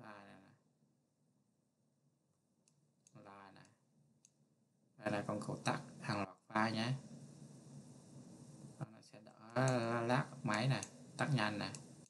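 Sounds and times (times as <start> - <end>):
computer mouse clicks: 9.5 - 12.0.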